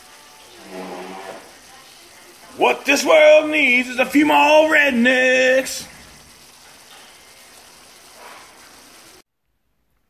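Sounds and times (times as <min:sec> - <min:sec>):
shrimp sizzling in a skillet: 0:00.0 - 0:09.2.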